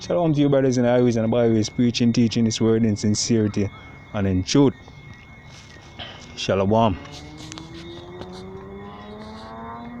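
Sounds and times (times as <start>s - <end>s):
engine running with rising pitch: 0.0s - 10.0s.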